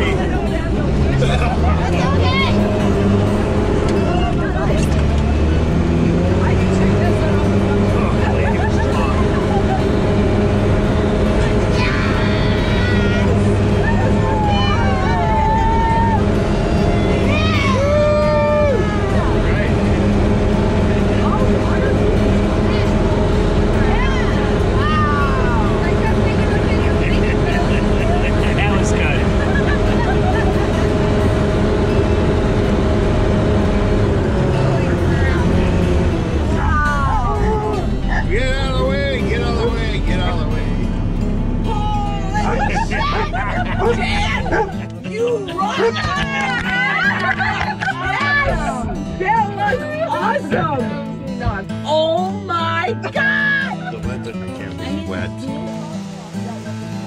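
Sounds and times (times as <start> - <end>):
diesel engine running: 0.0 - 57.0
voices talking: 0.0 - 57.0.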